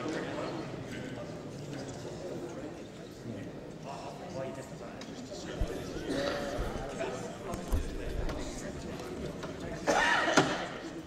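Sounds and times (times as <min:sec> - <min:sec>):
murmur of many voices: 0:00.0 - 0:11.0.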